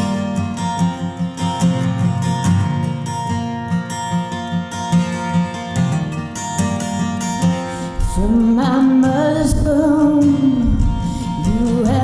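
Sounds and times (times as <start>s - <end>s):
acoustic guitar strummed: 0.0s - 12.0s
slow song: 5.4s - 12.0s.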